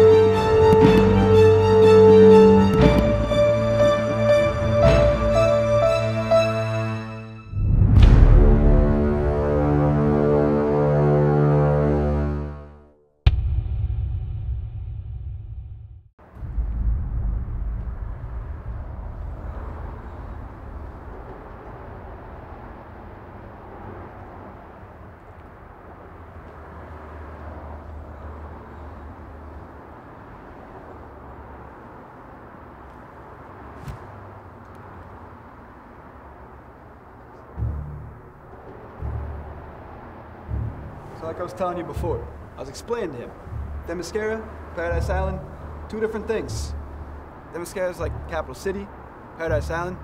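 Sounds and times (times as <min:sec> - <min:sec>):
low thumps: 0:07.5 - 0:09.6, 0:13.2 - 0:21.6, 0:37.6 - 0:47.4
low rumble with hiss: 0:16.2 - 0:22.7, 0:37.6 - 0:50.0.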